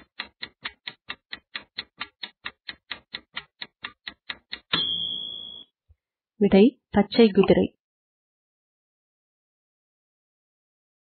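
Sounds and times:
clock-like ticking: 0.0 - 5.6
high ringing tone: 4.7 - 5.7.

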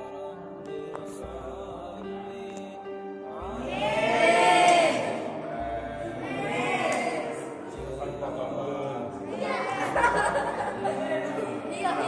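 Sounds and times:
voices chanting a wavering call: 0.0 - 12.0.

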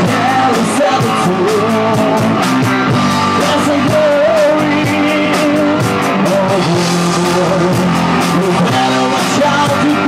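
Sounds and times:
drums: 0.0 - 10.0
electric guitars sustained notes: 0.0 - 10.0.

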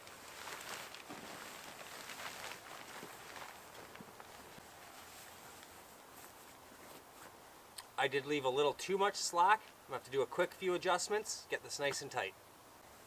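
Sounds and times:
shuffling over dry grass: 0.0 - 7.4
tarp rustling: 0.0 - 7.5.

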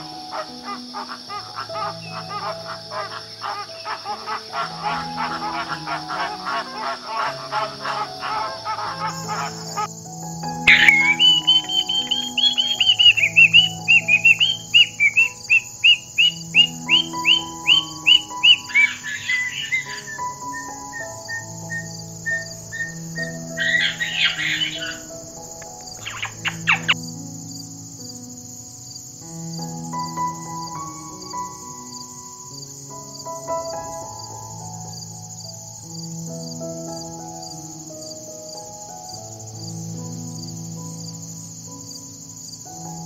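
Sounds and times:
flamingos calling: 0.0 - 9.9, 10.6 - 27.0
calm background music: 0.0 - 43.0
cockatoo calling: 0.3 - 9.9, 10.6 - 27.0.

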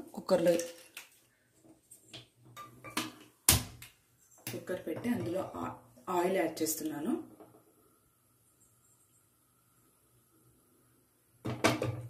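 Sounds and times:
light knocks of pressure cooker: 11.4 - 12.0.

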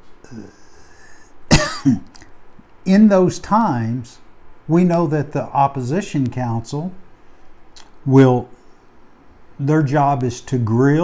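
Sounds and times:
man coughing: 1.5 - 2.2.

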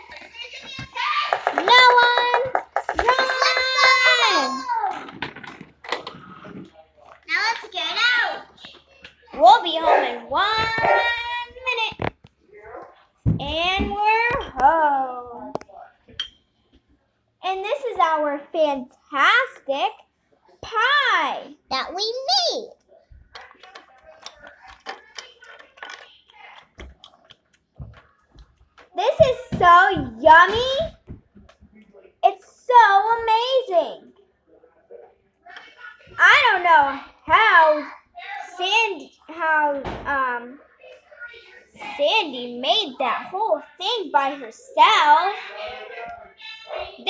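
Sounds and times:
soft scattered sounds: 0.0 - 47.0
plastic toys clicking on hard floor: 1.3 - 3.8, 23.3 - 29.0.

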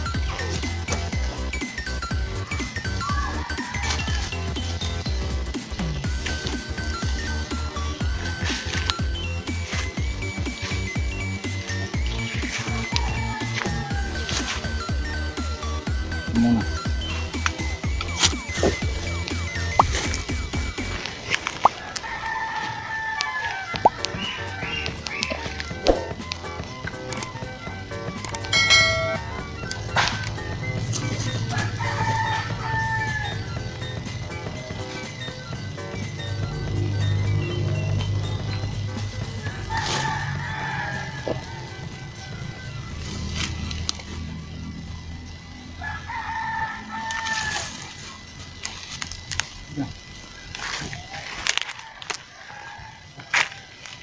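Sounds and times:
background music: 0.0 - 50.1
rooster crowing: 2.3 - 5.5, 6.6 - 15.8, 21.5 - 26.1, 31.0 - 48.4, 50.0 - 54.0.

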